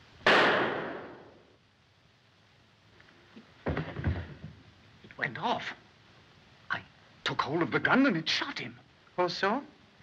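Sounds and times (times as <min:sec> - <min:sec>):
handgun shot: 0:00.3 - 0:01.3.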